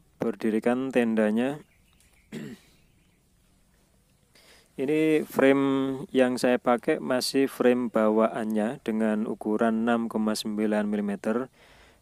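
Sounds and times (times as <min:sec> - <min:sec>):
man clearing throat: 0:02.3 - 0:02.8.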